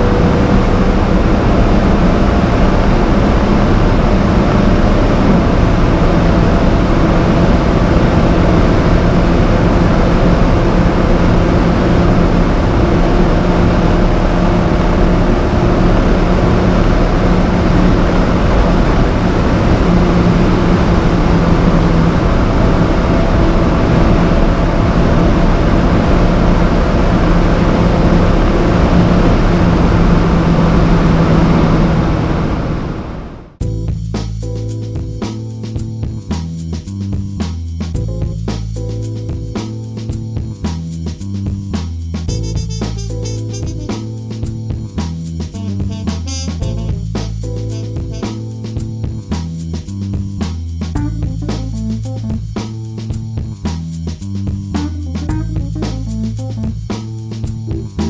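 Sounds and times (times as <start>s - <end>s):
car engine running hard: 0.0s - 58.0s
wind and road noise: 0.0s - 58.0s.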